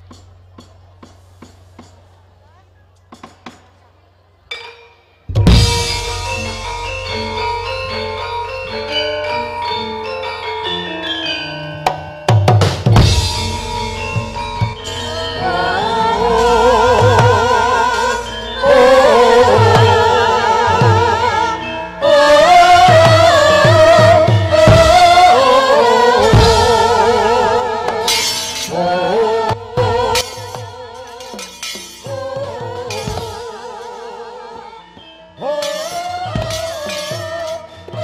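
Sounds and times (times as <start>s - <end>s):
sharp struck accents: 4.5s - 10.5s, 11.8s - 21.4s, 26.1s - 33.6s, 35.5s - 38.0s
gamelan metallophones ringing: 4.5s - 38.0s
bright metallic crash: 5.3s - 8.5s, 28.0s - 29.2s, 30.1s - 33.5s, 35.6s - 37.8s
sharp percussive stroke: 30.2s - 33.4s.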